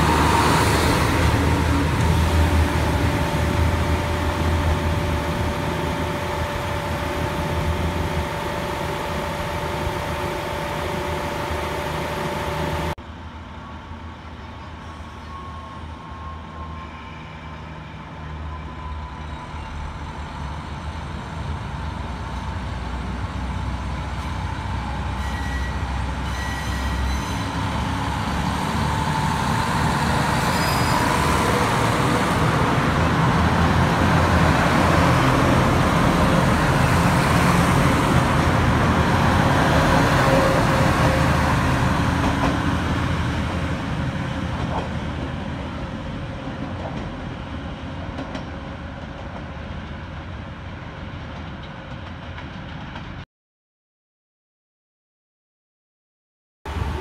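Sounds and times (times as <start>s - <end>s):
diesel railcar engines idling: 0.0s - 16.6s
diesel train moving along track: 0.0s - 53.2s, 56.7s - 57.0s.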